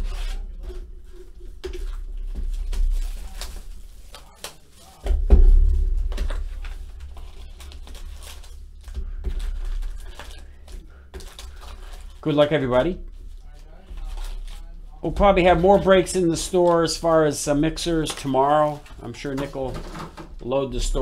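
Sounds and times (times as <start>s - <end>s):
rustling and crinkling of packs: 0.0s - 21.0s
heavy thump: 5.1s - 7.3s.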